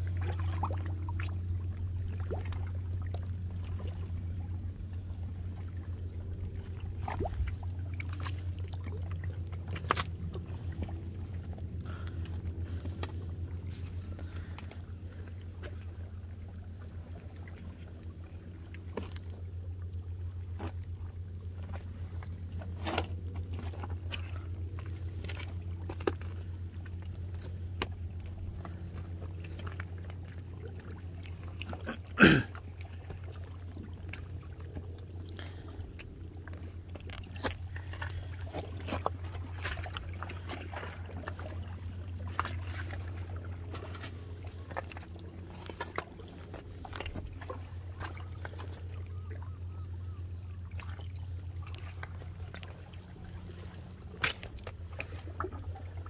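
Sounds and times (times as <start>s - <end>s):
low motor drone: 0.0s - 56.0s.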